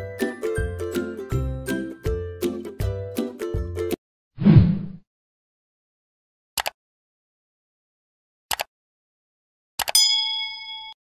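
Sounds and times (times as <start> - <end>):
notification bell chime: 10.0 - 11.0.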